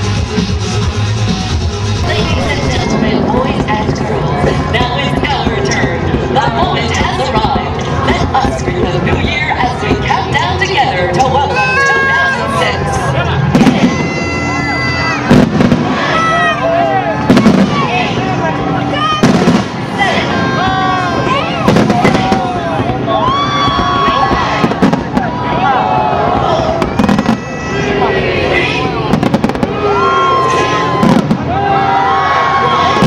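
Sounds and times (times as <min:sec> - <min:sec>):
crowd shouting and cheering: 0:00.0 - 0:33.0
fireworks bursting: 0:02.0 - 0:09.3, 0:15.3 - 0:16.1, 0:17.3 - 0:17.8, 0:19.2 - 0:19.9, 0:21.7 - 0:23.1, 0:26.8 - 0:27.5, 0:29.1 - 0:29.8.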